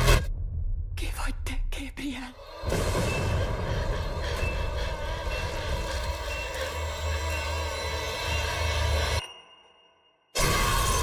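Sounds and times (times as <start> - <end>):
dense rumble: 0.0 - 2.0.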